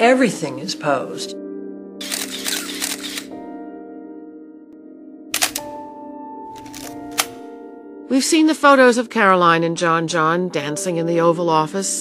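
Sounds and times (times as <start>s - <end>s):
soft background music: 0.0s - 12.0s
camera shutter clicks: 2.0s - 3.3s, 5.4s - 5.8s.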